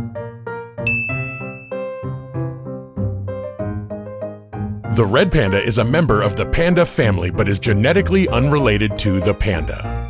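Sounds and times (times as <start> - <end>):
plucked keyboard music: 0.0 - 10.0
bright chime ding: 0.9 - 2.2.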